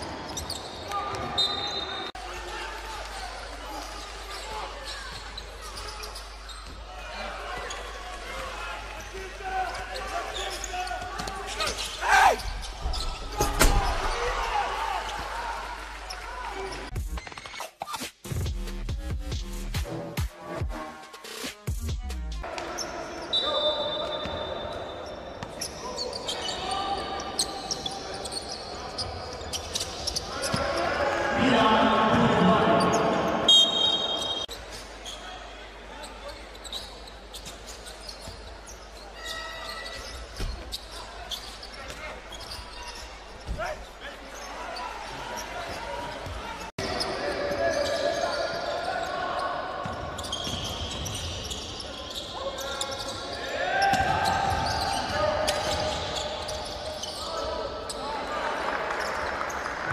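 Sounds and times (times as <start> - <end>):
sneaker squeaks: 0.0 - 2.2, 3.8 - 8.1, 9.7 - 14.3, 22.4 - 31.0, 32.2 - 58.3
echoing voices: 30.3 - 34.5.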